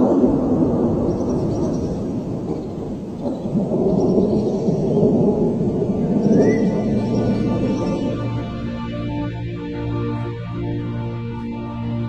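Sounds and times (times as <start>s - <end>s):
low rumbling thunder: 0.0s - 9.4s.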